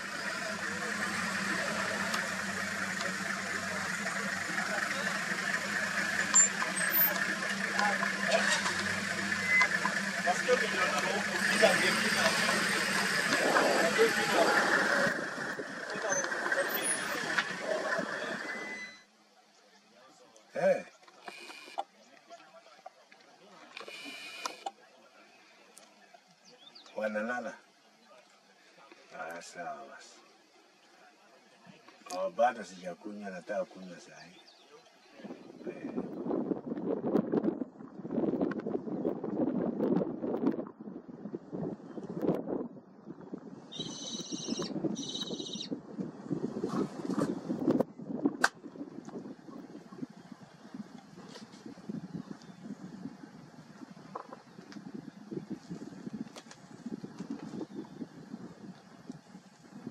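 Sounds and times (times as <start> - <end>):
vehicle engine running: 0.0 - 18.9
indistinct voices talking: 0.0 - 19.0
wind gusting against microphone: 6.5 - 18.5, 35.0 - 59.9.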